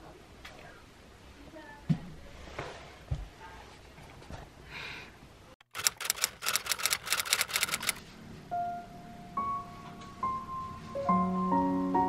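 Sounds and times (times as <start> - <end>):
fast sharp clicks: 5.6 - 8.0
soft piano notes: 8.4 - 12.0.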